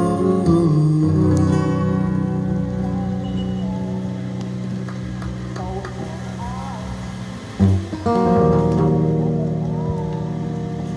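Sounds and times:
acoustic guitar chord ringing: 0:00.0 - 0:04.3.

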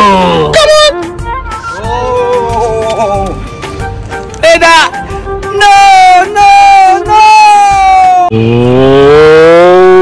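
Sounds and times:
long low moo-like call: 0:08.3 - 0:10.0.

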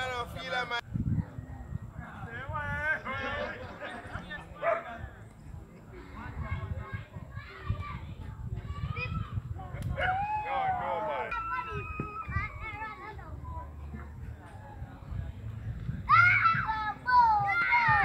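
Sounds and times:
people calling and shouting: 0:00.0 - 0:18.0.

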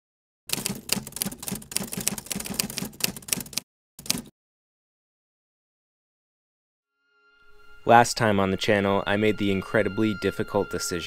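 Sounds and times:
typewriter keys clicking: 0:00.5 - 0:04.3.

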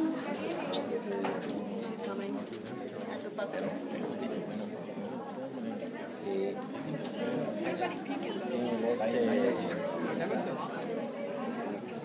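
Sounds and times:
murmur of conversation: 0:00.0 - 0:12.0.

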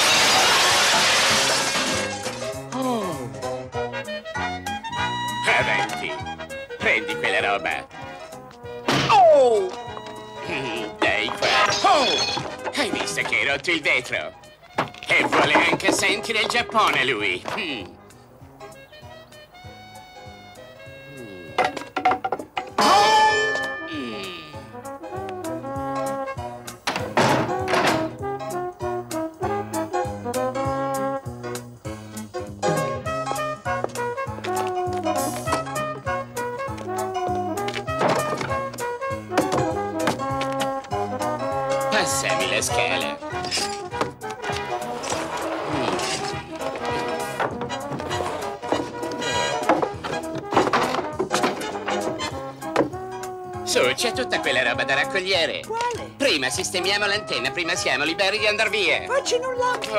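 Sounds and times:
loud noisy crash: 0:00.0 - 0:02.4
wooden knocks from ladder: 0:37.6 - 0:40.8, 0:46.6 - 0:53.0.

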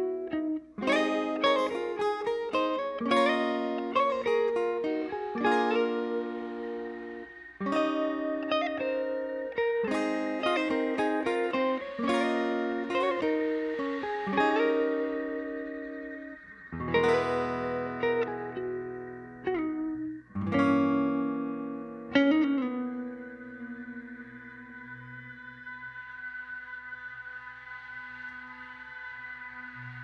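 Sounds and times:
electric guitar ringing chords: 0:00.0 - 0:30.0
wavering ambient drone: 0:00.0 - 0:30.0.

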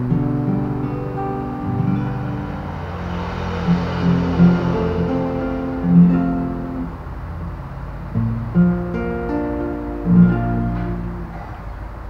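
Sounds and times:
acoustic guitar chords ringing: 0:00.0 - 0:12.0.

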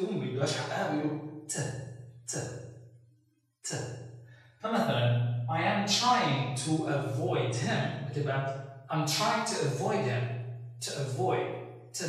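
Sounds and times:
man saying a syllable: 0:00.0 - 0:01.7, 0:04.6 - 0:10.2, 0:10.8 - 0:11.4.

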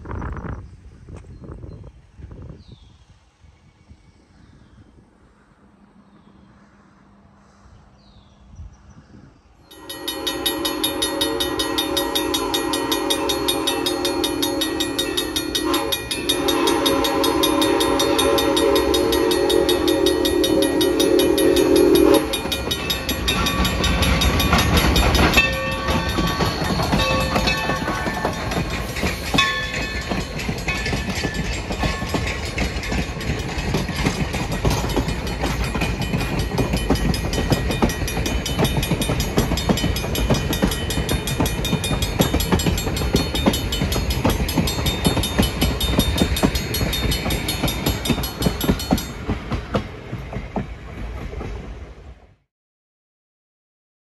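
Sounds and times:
train rumbling past: 0:03.2 - 0:52.5
steam locomotive whistle: 0:09.7 - 0:32.2
wheels clattering on rails: 0:09.7 - 0:51.9.

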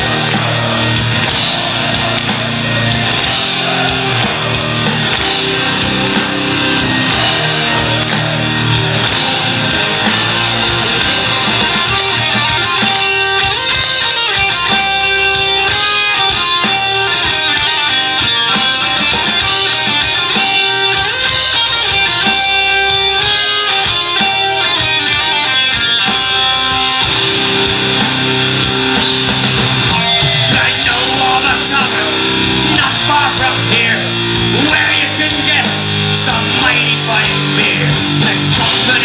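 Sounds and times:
drums: 0:00.0 - 0:39.0
electric guitars: 0:00.0 - 0:39.0.

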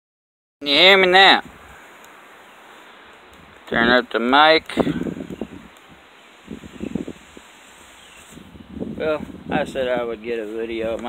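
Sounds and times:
faint hiss: 0:00.6 - 0:11.0.

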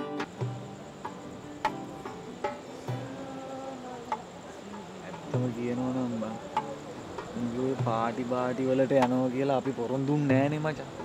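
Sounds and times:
crickets chirping: 0:00.0 - 0:11.0
man talking: 0:05.0 - 0:11.0.

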